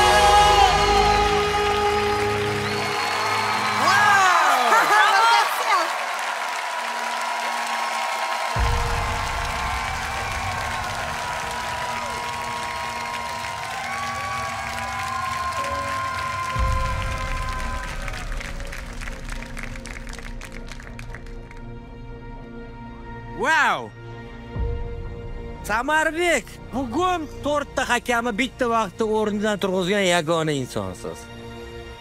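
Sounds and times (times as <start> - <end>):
audience applauding and cheering: 0.0 - 22.5
background music: 0.0 - 32.0.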